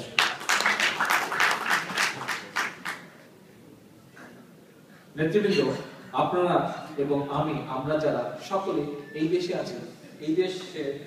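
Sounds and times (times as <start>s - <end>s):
audience clapping in rhythm: 0.0s - 3.1s.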